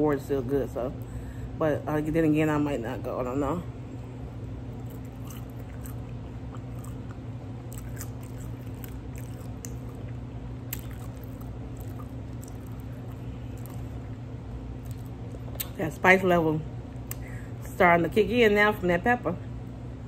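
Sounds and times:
steady low hum: 0:00.0 - 0:20.0
person chewing food: 0:04.4 - 0:15.7
wet mouth clicks: 0:07.8 - 0:14.0.

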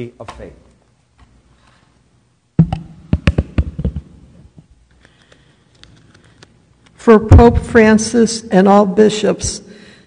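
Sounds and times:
microphone handling thumps and clicks: 0:02.6 - 0:04.7.

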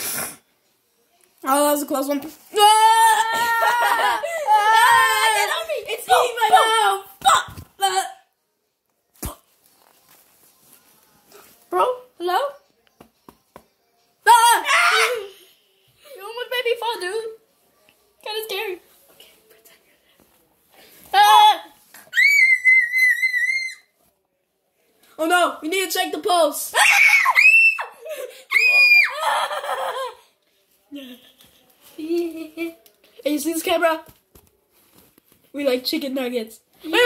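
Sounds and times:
child crying: 0:02.6 - 0:05.6
child's high steady squeal: 0:22.1 - 0:23.9.

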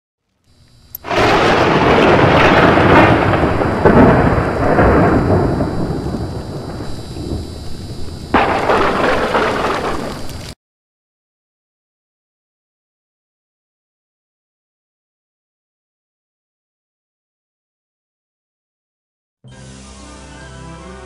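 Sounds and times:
thunder crack rolling: 0:01.0 - 0:10.6.

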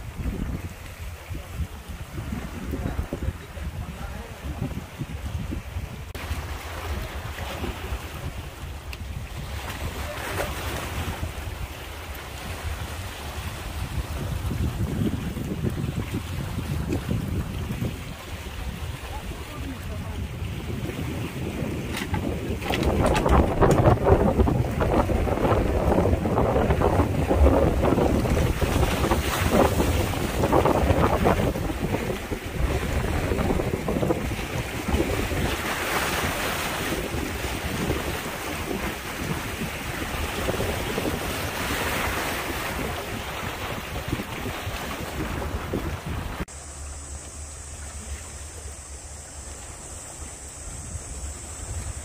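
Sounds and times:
wind buffeting microphone: 0:00.0 - 0:46.5
waves washing against rocks: 0:00.0 - 0:46.6.

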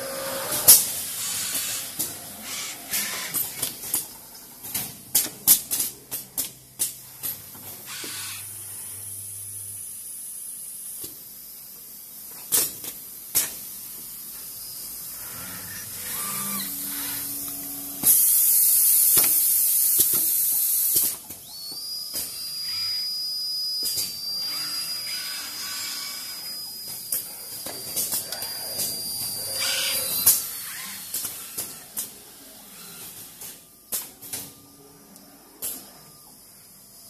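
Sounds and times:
compressed air hiss: 0:00.0 - 0:03.5
high steady machine whine: 0:00.0 - 0:04.6, 0:14.3 - 0:37.0
pneumatic valves clicking and clacking: 0:00.0 - 0:08.4, 0:12.3 - 0:13.7, 0:16.0 - 0:23.1, 0:23.8 - 0:32.2.

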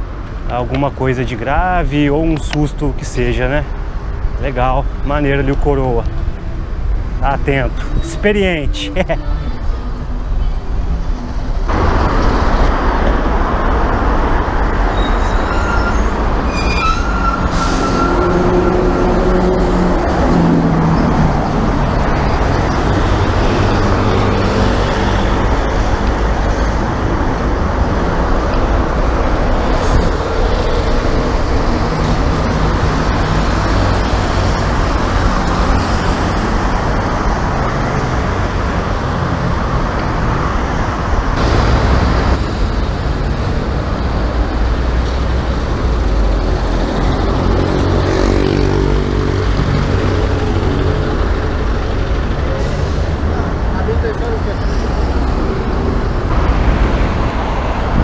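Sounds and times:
road traffic passing: 0:00.0 - 0:58.0.

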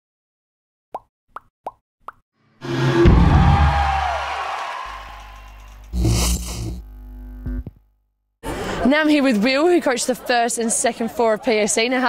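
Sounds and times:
sound effect hit: 0:02.6 - 0:04.3.

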